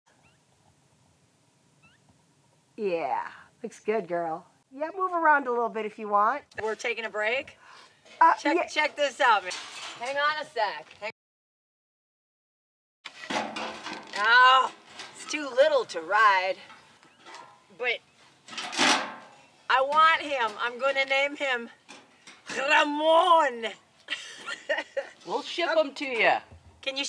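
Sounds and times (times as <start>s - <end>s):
clattering rustling noise: 8.1s - 11.1s, 13.1s - 21.2s.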